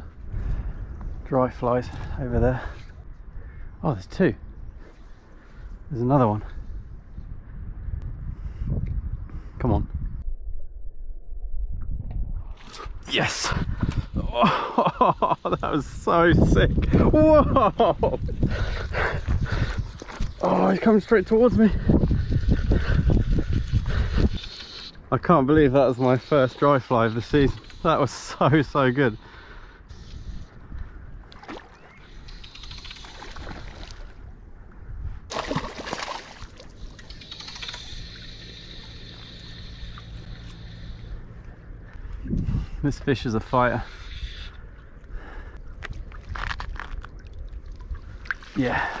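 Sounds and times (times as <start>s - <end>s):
wind rumbling on microphone: 0.0s - 49.0s
water splashing and sloshing: 31.2s - 34.4s, 35.2s - 41.0s, 45.8s - 49.0s
scattered crackles: 32.1s - 34.1s, 36.6s - 41.0s, 45.8s - 47.4s
fly reel clicking: 32.2s - 33.5s, 36.8s - 41.2s.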